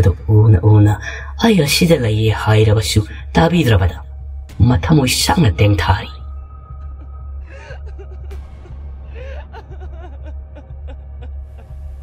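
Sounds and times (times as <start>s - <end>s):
background music with low drone: 0.0s - 12.0s
breathy gasp: 9.1s - 9.5s.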